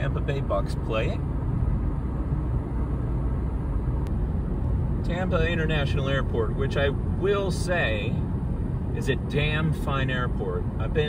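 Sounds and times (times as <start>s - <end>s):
engine and tyre rumble: 0.0s - 11.0s.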